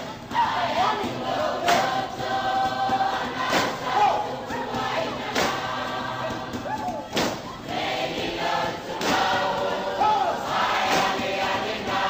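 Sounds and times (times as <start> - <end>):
group of voices singing: 0.0 - 12.0
music: 0.0 - 12.0.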